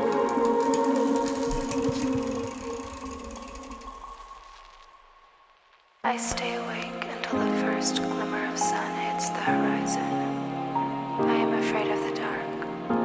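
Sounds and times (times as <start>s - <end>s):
held synth chords: 0.0s - 4.2s
light regular ticks: 0.0s - 5.0s.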